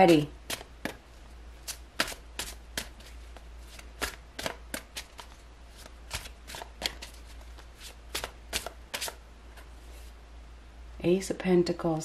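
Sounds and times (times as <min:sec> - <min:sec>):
cards being shuffled: 0:01.6 - 0:09.7.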